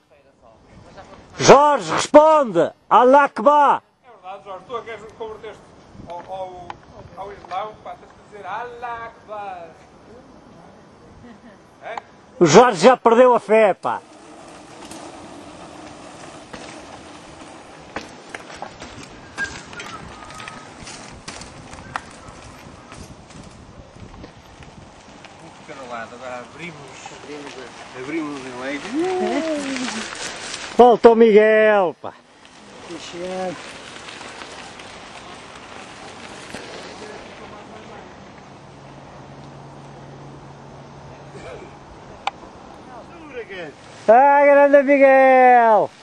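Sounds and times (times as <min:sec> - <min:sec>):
bikes clicking and rattling: 0:11.8 - 0:46.0
tyres rumbling on dirt: 0:12.4 - 0:39.1.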